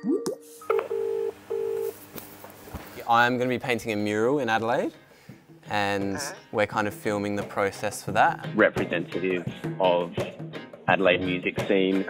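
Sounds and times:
phone ringback tone: 0:00.6 - 0:02.0.

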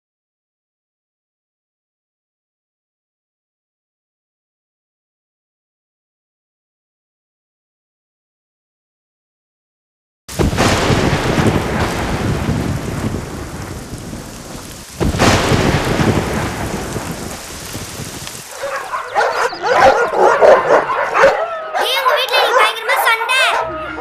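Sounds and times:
rain: 0:10.3 - 0:20.7
thunderclap rolling: 0:10.3 - 0:21.3.

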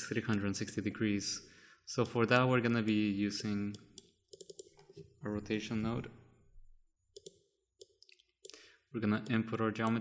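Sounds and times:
computer mouse clicks: 0:03.7 - 0:05.1, 0:07.1 - 0:08.6.

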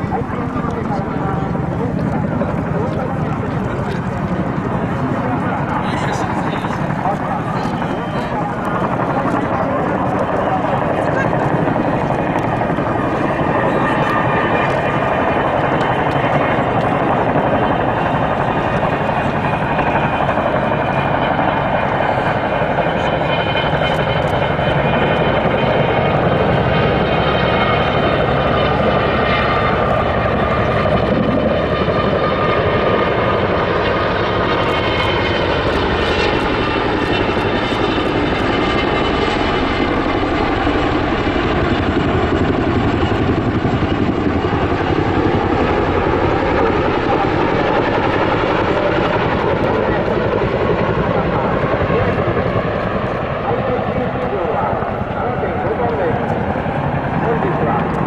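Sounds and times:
helicopter rotors chopping: 0:00.0 - 0:58.0
turbine engine whine: 0:00.0 - 0:58.0.

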